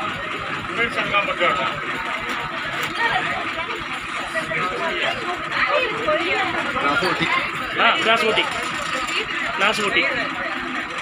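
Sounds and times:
people chattering: 0:00.0 - 0:11.0.

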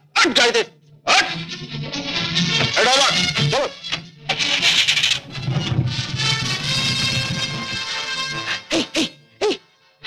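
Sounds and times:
dramatic film music: 0:00.0 - 0:10.0.

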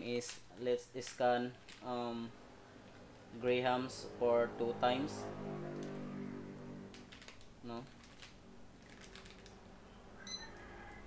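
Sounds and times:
barcode scanner beep: 0:10.2 - 0:10.6.

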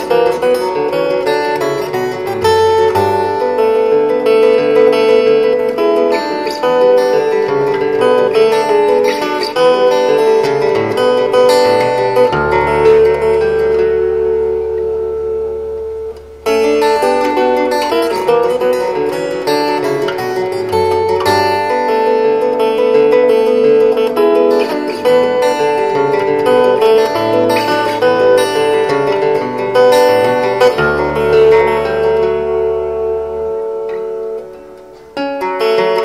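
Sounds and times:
fingerstyle acoustic guitar: 0:00.0 - 0:36.0.

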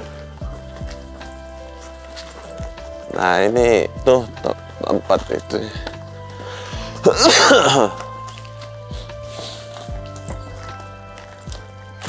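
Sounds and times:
soft background music: 0:00.0 - 0:12.0
man coughing: 0:07.0 - 0:08.0.

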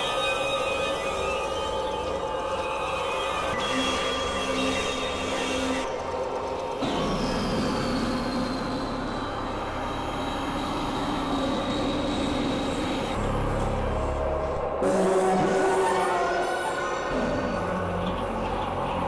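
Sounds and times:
synthesizer drone and noise music: 0:00.0 - 0:19.0.

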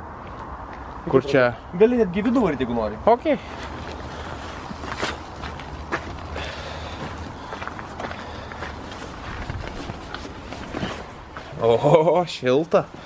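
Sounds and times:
footsteps on gravel: 0:03.5 - 0:11.7.

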